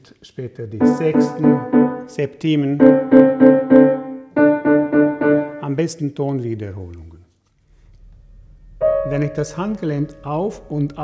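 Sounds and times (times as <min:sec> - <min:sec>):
piano double notes repeated: 0:00.8 - 0:05.8, 0:08.8 - 0:11.0.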